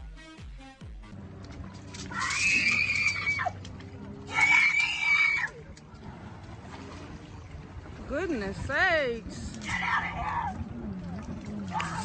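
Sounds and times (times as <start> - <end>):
woman screaming: 2.1 - 3.6, 4.3 - 5.6.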